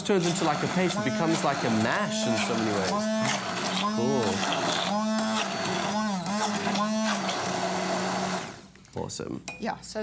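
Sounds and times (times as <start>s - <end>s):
stick blender motor running: 0.0s - 8.6s.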